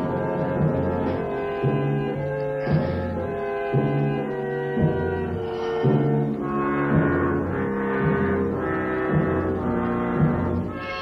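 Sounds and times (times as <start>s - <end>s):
orchestral score with low chords: 0.0s - 11.0s.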